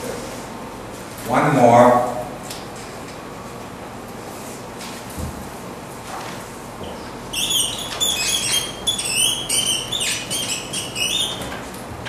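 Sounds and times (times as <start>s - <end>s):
marker squeaking on whiteboard: 7.3s - 11.6s.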